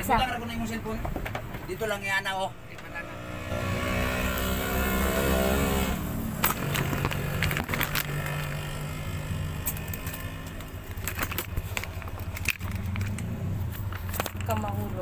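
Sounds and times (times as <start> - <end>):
knocks and clatter: 0.8 - 2.9, 6.4 - 8.7.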